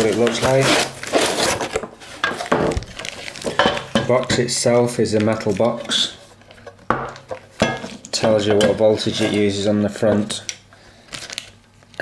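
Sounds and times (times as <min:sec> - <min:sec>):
metal box rubbing on cardboard: 0:00.0 - 0:01.6.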